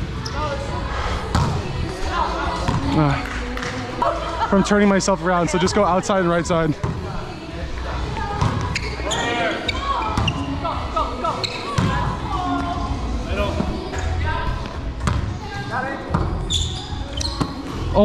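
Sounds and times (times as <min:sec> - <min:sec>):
players calling and talking: 0:00.0 - 0:18.0.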